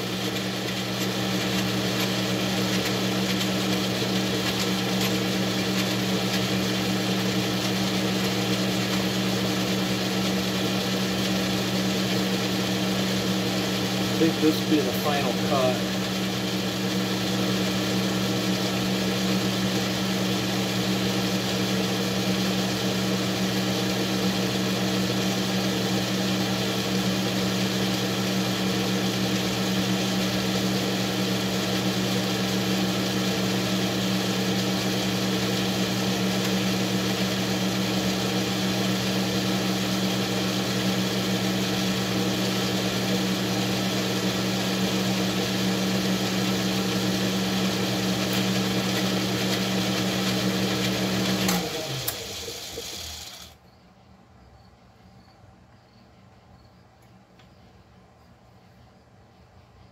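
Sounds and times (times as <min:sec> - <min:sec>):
metal lathe running: 0:00.0 - 0:21.0.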